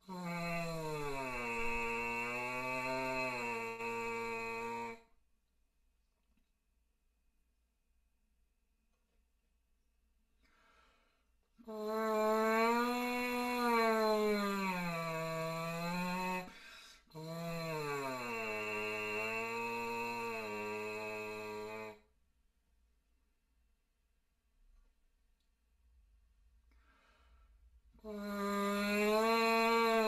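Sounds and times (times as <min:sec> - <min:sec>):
buzzed horn mouthpiece tones: 0:00.0 - 0:05.1, 0:11.6 - 0:22.0.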